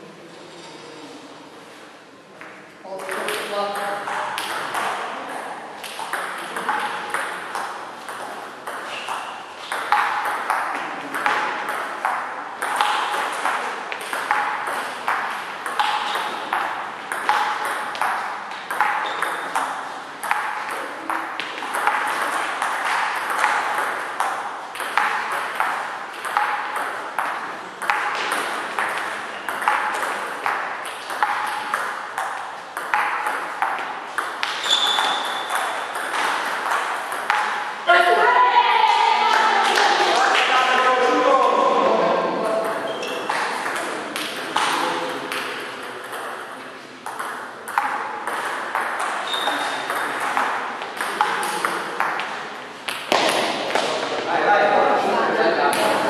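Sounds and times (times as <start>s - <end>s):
ball bouncing on table: 2.4s - 5.1s, 5.8s - 37.7s, 42.6s - 54.1s
table tennis ball hitting bats: 3.0s - 37.9s, 42.6s - 54.2s, 55.7s - 56.0s.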